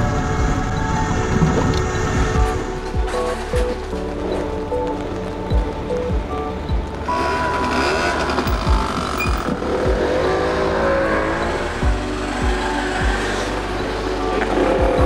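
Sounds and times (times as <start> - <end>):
music with deep beat: 0.0 - 15.0
motorbike engine revving: 6.9 - 15.0.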